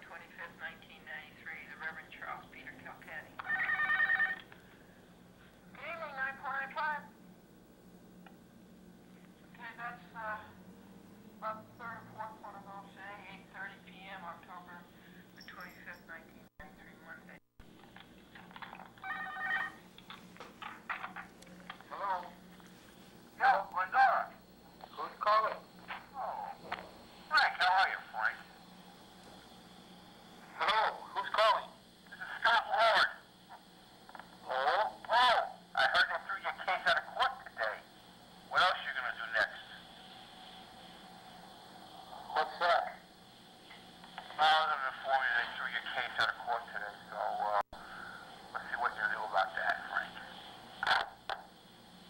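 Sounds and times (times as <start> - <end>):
muffled speech over phone line: 0.0 - 4.4, 5.8 - 7.1, 21.0 - 22.5, 23.4 - 28.6, 30.4 - 37.9, 38.5 - 40.0, 42.1 - 43.1, 44.1 - 51.1
steady low hum: 0.0 - 52.0
voice over phone line: 27.3 - 28.5, 30.5 - 33.2.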